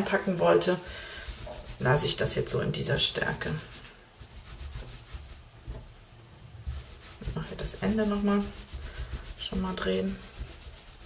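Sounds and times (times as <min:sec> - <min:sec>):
wet cord rubbing on towel: 0:00.0 - 0:06.0, 0:06.6 - 0:11.0.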